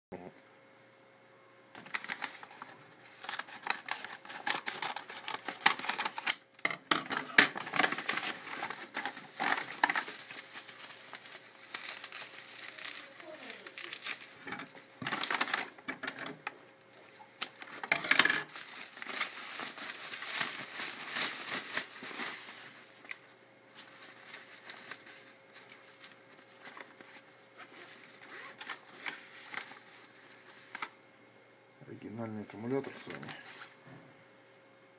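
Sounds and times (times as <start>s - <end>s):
paper envelope rustling: 1.8s - 6.3s, 7.1s - 31.0s
bubble wrap crinkling: 1.8s - 6.5s, 7.1s - 31.1s, 32.7s - 33.8s.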